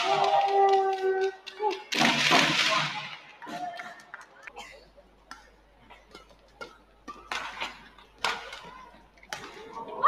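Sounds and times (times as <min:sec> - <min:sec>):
racket hitting shuttlecock: 0:05.3 - 0:09.6.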